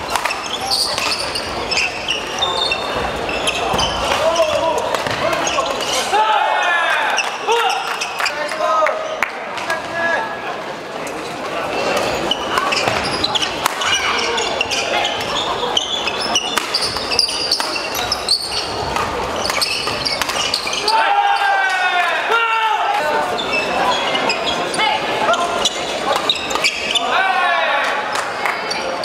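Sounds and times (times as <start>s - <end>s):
sneakers squeaking on floor: 0.0s - 9.2s, 11.2s - 21.5s, 23.2s - 27.2s, 28.1s - 29.0s
players' voices: 0.0s - 29.0s.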